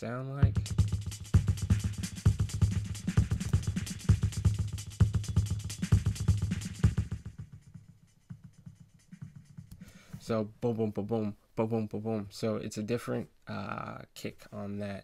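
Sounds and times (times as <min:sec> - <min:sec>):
programmed drum beat: 0:00.4 - 0:10.5.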